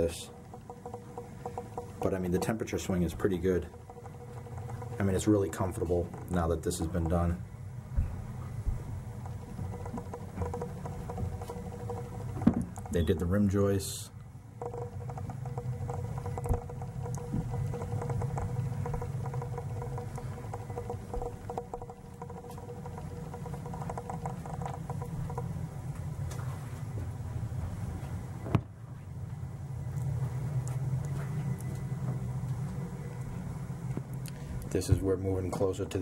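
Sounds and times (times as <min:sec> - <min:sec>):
boiler humming: 0:00.0 - 0:36.0
faint steady tones: 0:00.0 - 0:36.0
small clicks: 0:14.2 - 0:25.5.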